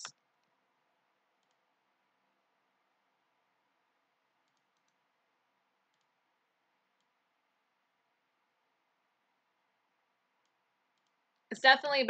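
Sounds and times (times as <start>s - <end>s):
faint computer mouse clicks: 1.4s - 1.6s, 4.4s - 5.0s, 5.9s - 6.2s, 10.4s - 11.5s.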